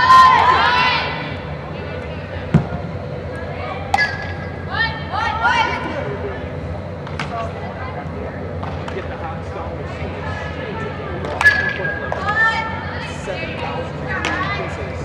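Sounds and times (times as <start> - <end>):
players shouting: 0.0 - 1.4
hum of indoor hall: 0.0 - 15.0.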